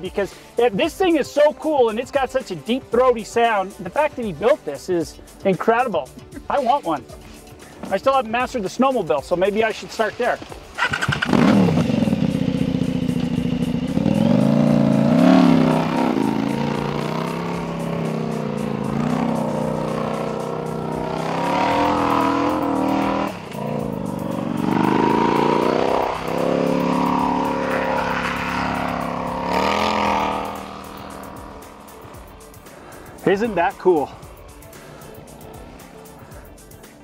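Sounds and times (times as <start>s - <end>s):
snow bike engine revving: 9.9s - 36.5s.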